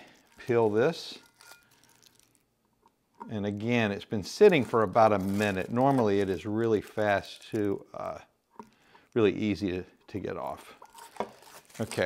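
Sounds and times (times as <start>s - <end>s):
paper scratching and crinkling: 4.2s - 7.8s, 11.0s - 12.0s.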